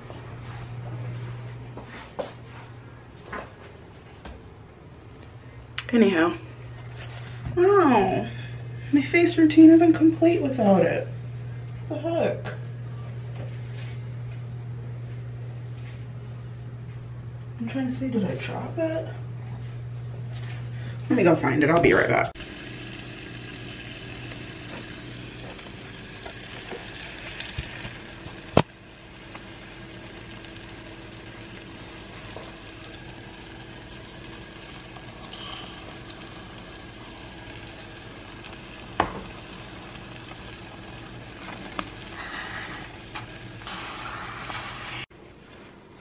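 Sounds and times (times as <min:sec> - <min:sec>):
food sizzling and simmering: 0:22.4 - 0:45.1.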